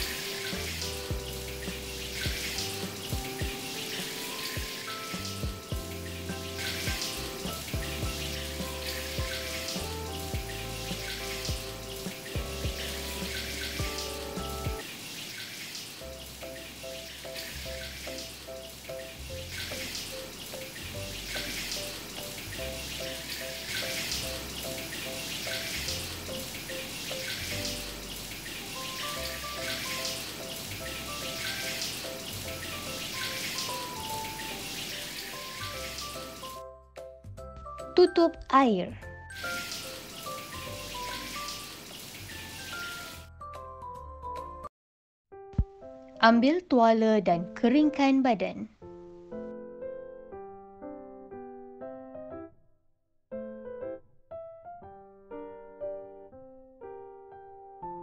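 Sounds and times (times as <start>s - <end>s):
light background music: 0.0s - 14.8s, 16.0s - 44.7s, 45.5s - 50.7s
shower water running: 0.0s - 36.6s, 39.3s - 43.3s.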